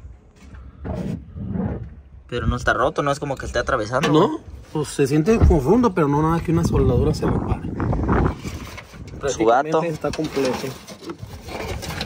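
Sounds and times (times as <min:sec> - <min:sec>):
hand scraping spare tyre: 0:08.0 - 0:12.0.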